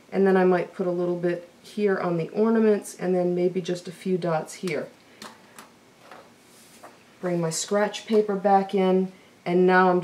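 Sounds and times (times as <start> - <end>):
paper sliding rustle: 6.0 - 7.0.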